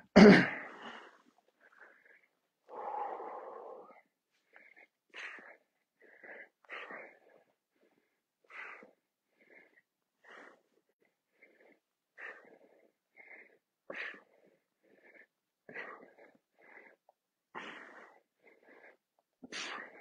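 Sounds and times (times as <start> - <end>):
man breathing heavily: 0.6 - 20.0.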